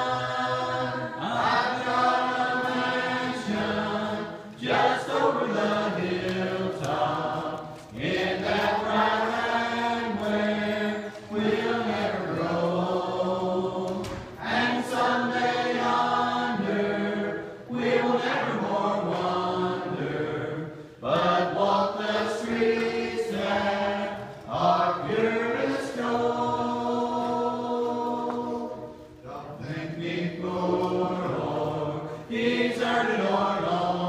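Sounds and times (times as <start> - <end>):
congregation singing a hymn: 0.0 - 34.0.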